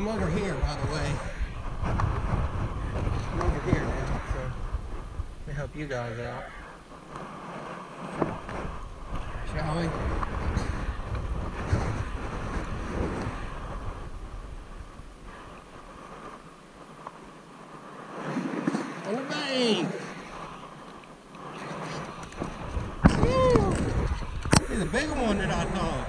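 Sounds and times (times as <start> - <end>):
clothing rubbing on microphone: 0.0 - 6.0, 6.6 - 26.0
wind rumble on microphone: 0.0 - 26.0.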